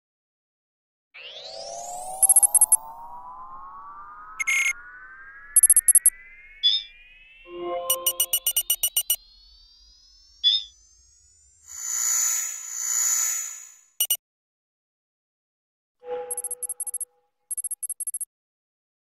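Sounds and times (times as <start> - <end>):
electronic tone gliding upward: 1.2 - 13.9, 16.1 - 17.0
short electronic beeps: 2.2 - 2.8, 4.4 - 4.8, 5.5 - 11.4, 13.2 - 14.2, 16.0 - 18.3.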